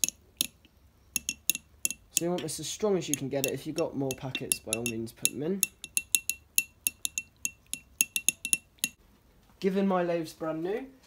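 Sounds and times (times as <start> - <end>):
metal clinking on ceramic dish: 1.2 - 2.4, 3.2 - 9.0.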